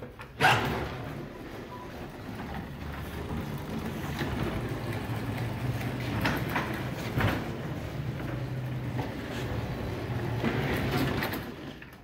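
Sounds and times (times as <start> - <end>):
floor scrubber humming: 0.8 - 11.4.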